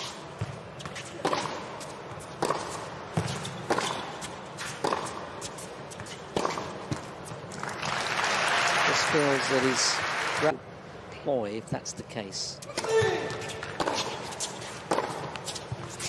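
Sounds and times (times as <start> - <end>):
tennis ball struck by racquets: 0.4 - 5.3, 5.9 - 7.4, 12.7 - 16.0
crowd applause: 7.6 - 10.6.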